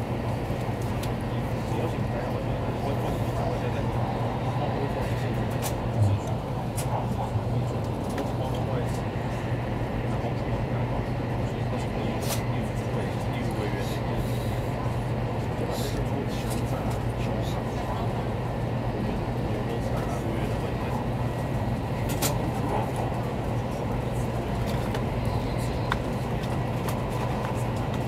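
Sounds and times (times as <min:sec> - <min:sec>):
train cabin running hum: 0:00.0 - 0:28.0.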